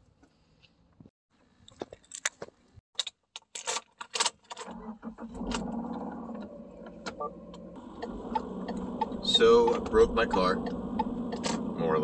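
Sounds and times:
car engine starting and idling: 0:04.6 - 0:12.0.

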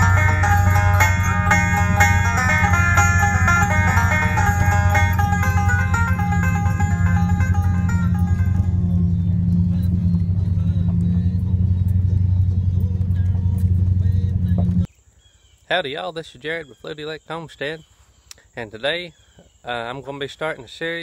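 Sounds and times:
banjo music: 0:00.0 - 0:11.9
vehicle driving on dirt track: 0:00.0 - 0:14.9.

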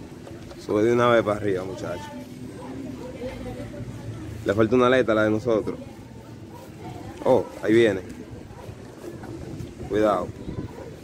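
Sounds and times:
wind buffeting microphone: 0:08.0 - 0:11.0.

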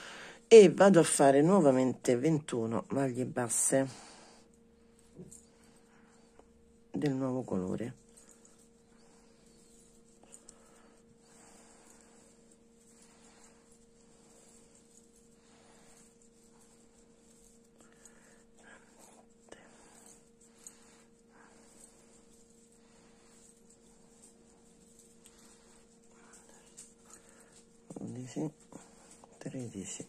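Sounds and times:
steady low hum: 0:00.0 - 0:30.0
crochet hook working yarn: 0:06.9 - 0:30.0.

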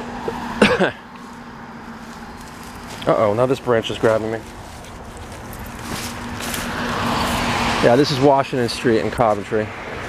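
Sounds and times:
car driving past: 0:05.7 - 0:10.0.

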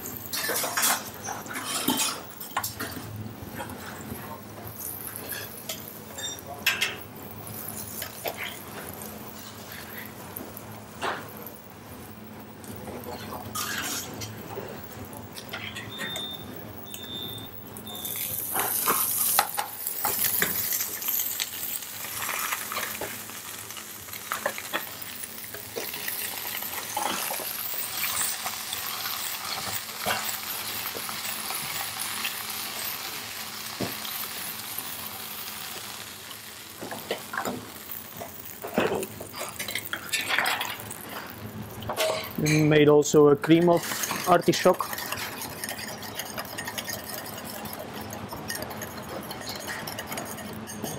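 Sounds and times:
food sizzling in hot oil: 0:00.0 - 0:42.8, 0:43.4 - 0:50.9.

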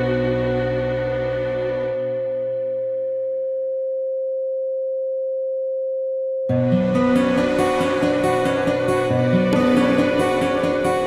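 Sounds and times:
sine wave tone: 0:00.0 - 0:10.0.

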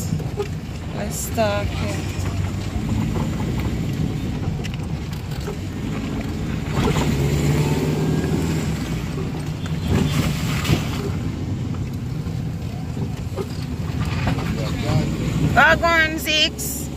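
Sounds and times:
car engine and tyre drone: 0:00.0 - 0:16.9.

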